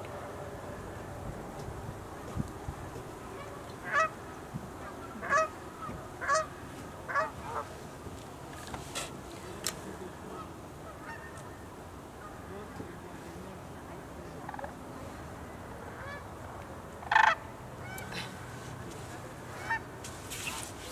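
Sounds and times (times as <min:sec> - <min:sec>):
cranes calling: 0:03.4 - 0:07.7, 0:17.0 - 0:18.3.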